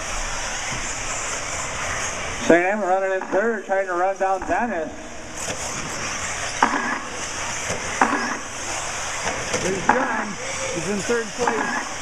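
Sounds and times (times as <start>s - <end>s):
rc cars buzzing: 0.0s - 4.4s, 5.2s - 12.0s.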